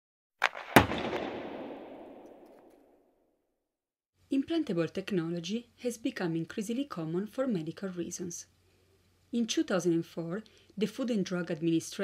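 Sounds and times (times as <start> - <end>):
loud crackling impact: 0.4 - 2.7.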